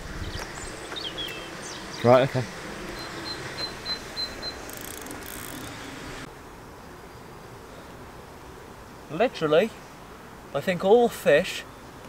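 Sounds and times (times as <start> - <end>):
fishing reel clicking: 4.6 - 5.7.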